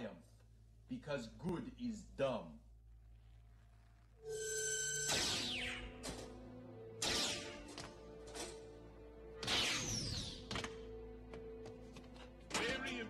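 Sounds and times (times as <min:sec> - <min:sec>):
background music: 0:04.2 - 0:13.0.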